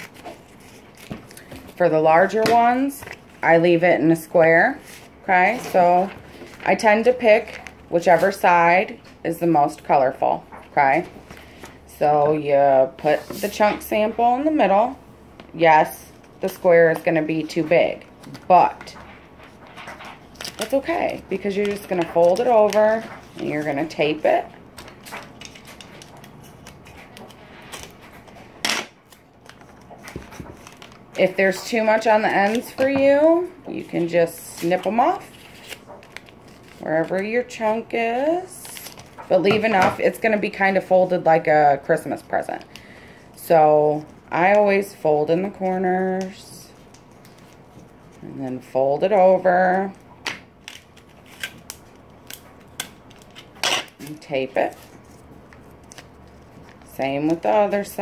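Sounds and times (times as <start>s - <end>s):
paper crinkle: 0.0s - 1.8s, 18.1s - 37.3s, 46.1s - 48.6s, 50.6s - 57.5s
paper rustling: 0.0s - 3.3s, 16.2s - 37.3s.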